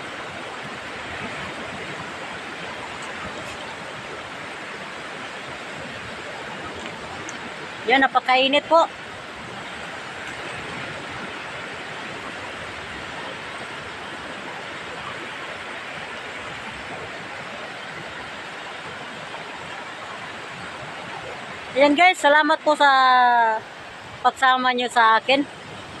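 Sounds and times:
sea surf: 0.0 - 26.0
wind: 0.0 - 26.0.

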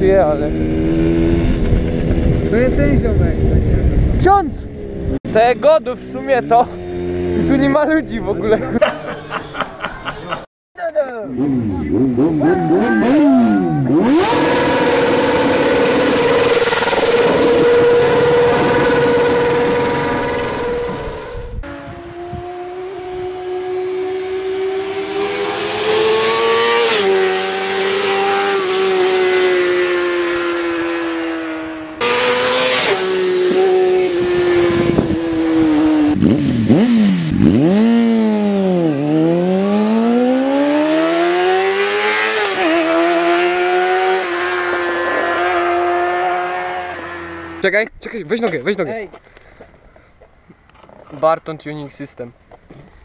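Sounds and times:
motorcycle engine revving: 0.0 - 5.2, 6.0 - 8.7, 11.3 - 47.6.

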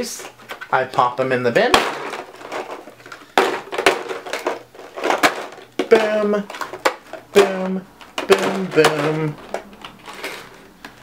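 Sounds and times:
containers clattering into bin: 1.6 - 10.6.

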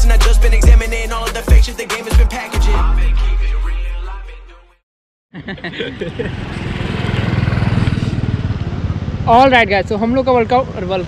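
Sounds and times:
motorcycle engine running: 6.1 - 10.9.

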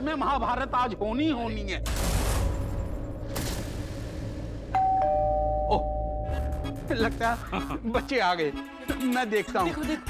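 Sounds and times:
two-note doorbell chime: 4.8 - 6.4.

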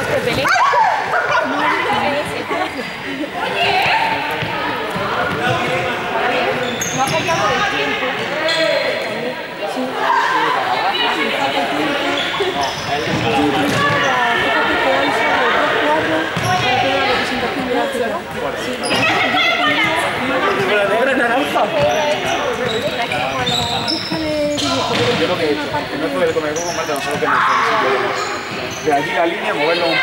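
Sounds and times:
young people talking and calling out: 0.0 - 30.0.

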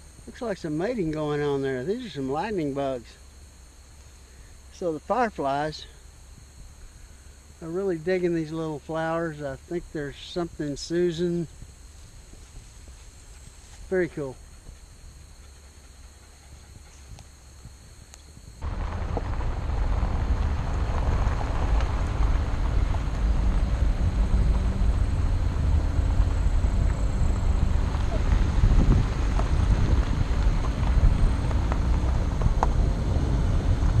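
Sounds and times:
car road noise on gravel: 0.0 - 15.5, 18.4 - 34.0
faint outdoor background: 0.0 - 34.0
small ticks: 11.5 - 19.3
wind on microphone: 16.4 - 34.0.

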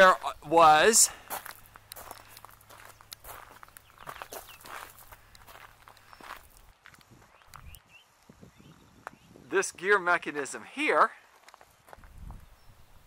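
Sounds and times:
faint footsteps: 1.0 - 8.4, 11.2 - 12.5.

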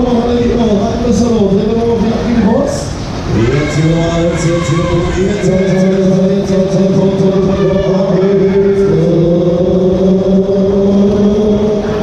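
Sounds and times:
ride cars rumbling on track: 0.0 - 12.0.

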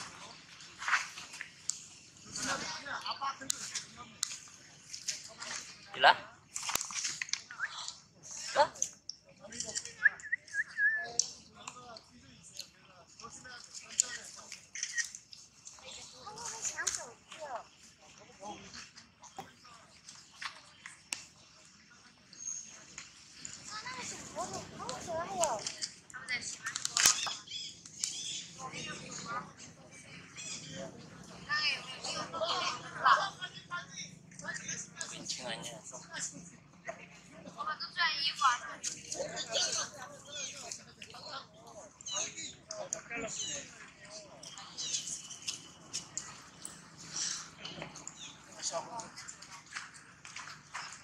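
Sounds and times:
monkey squeaking calls: 30.2 - 30.8.

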